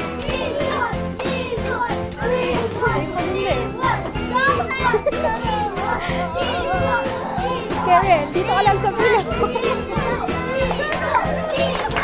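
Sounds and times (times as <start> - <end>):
children shouting and cheering: 0.0 - 12.0
upbeat background music: 0.0 - 12.0.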